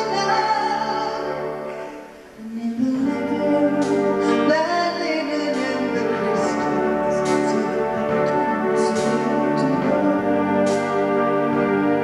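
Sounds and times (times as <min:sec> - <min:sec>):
wind band playing held chords: 0:03.6 - 0:12.0.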